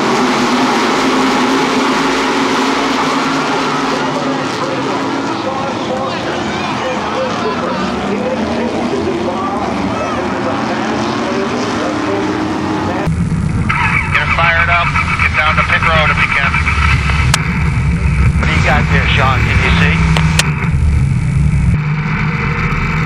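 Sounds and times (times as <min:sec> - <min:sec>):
distant race car engines: 0:00.0 - 0:23.0
racecar engine low rumble: 0:00.0 - 0:23.0
voices: 0:02.7 - 0:13.1, 0:13.7 - 0:17.2, 0:18.4 - 0:20.5
tinny radio voice: 0:13.7 - 0:17.1, 0:18.4 - 0:20.2.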